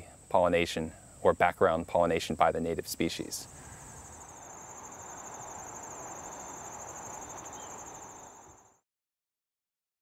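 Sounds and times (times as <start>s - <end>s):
crickets trilling: 0.0s - 8.8s
low outdoor hum: 3.4s - 8.8s.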